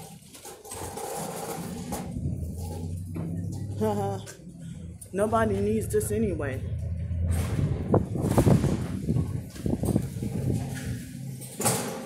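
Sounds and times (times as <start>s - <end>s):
machinery humming: 1.4s - 11.6s.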